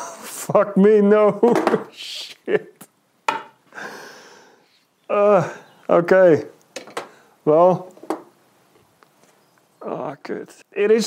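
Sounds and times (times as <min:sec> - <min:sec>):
man laughing: 0:00.0 - 0:02.9
long exhaled sigh: 0:03.7 - 0:04.6.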